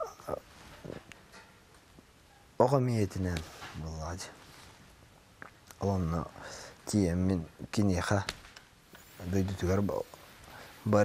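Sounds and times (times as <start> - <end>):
man's hesitant vocal sounds: 0.0 - 0.5
man breathing: 6.3 - 6.8, 10.4 - 10.9.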